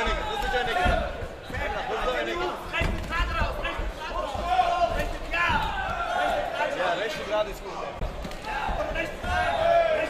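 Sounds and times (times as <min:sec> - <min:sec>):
dull thuds: 0:00.0 - 0:06.4
men shouting in echoing hall: 0:00.0 - 0:07.2, 0:08.4 - 0:10.0.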